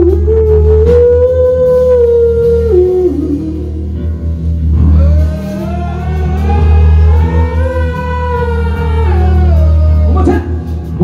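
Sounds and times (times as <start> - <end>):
heavy metal band playing live: 0.0 - 11.0
person singing long high note: 4.8 - 10.6.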